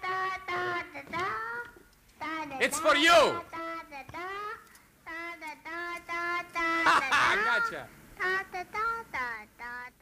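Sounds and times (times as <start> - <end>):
high-pitched voice singing: 0.0 - 10.0
person laughing: 6.8 - 7.4.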